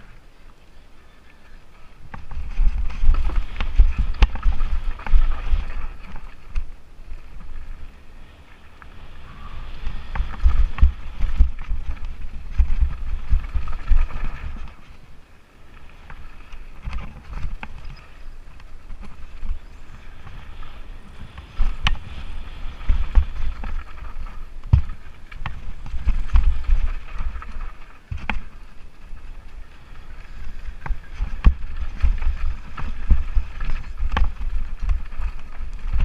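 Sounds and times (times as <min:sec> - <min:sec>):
bike rattling: 0:00.0 - 0:36.0
bike tyre rumble: 0:00.0 - 0:36.0
wind on microphone: 0:00.0 - 0:36.0
wheels knocking on stones: 0:02.1 - 0:06.7, 0:21.4 - 0:36.0.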